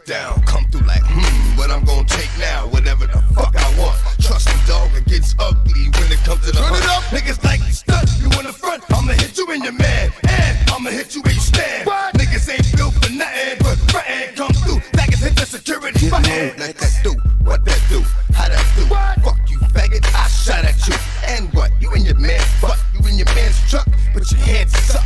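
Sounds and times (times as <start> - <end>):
rapping over a beat: 0.0 - 25.0
bass hits: 0.4 - 11.6, 12.2 - 15.4, 16.0 - 25.0.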